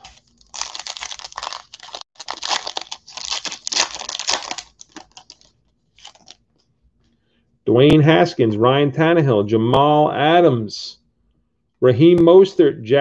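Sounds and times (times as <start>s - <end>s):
foil wrapper tearing and crinkling: 0.0s - 6.4s.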